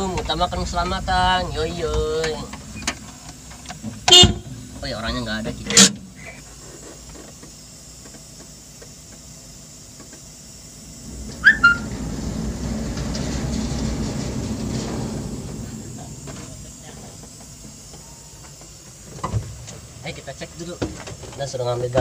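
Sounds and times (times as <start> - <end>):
metal gate rolling rumble: 0.0 - 5.9, 10.5 - 20.7
metal gate squeaking: 11.0 - 18.5.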